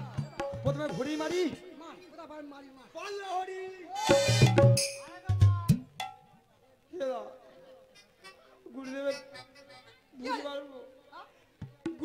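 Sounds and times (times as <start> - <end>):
sharp metallic strikes: 4.1 - 6.2.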